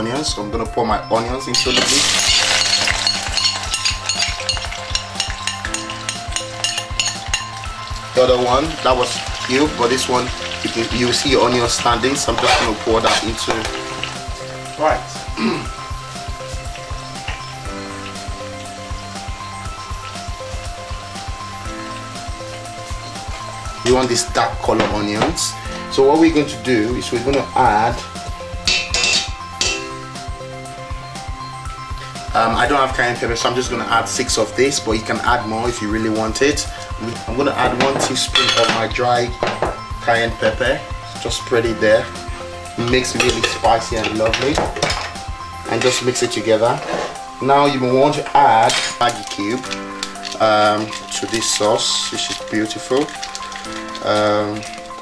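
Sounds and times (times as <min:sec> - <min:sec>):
background music with steady beat: 0:00.0 - 0:55.0
onions sizzling in hot oil: 0:01.6 - 0:55.0.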